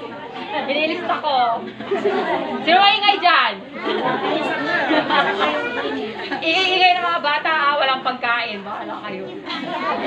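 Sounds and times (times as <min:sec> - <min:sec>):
people chattering: 0:00.0 - 0:10.0.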